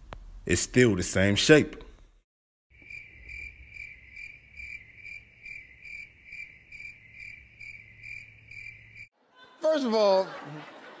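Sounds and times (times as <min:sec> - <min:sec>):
crickets chirping: 0:02.7 - 0:09.1.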